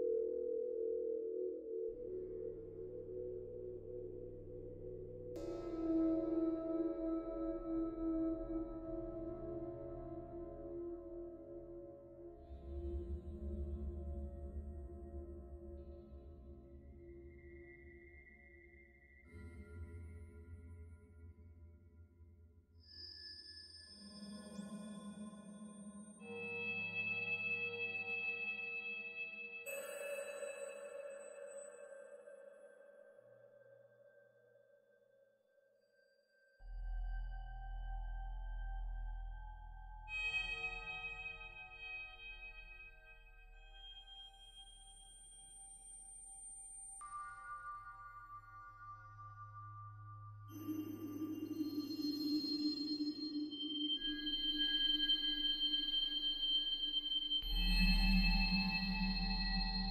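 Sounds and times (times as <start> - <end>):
grainy low synth drone: 1.9 - 17.4, 57.4 - 59.9.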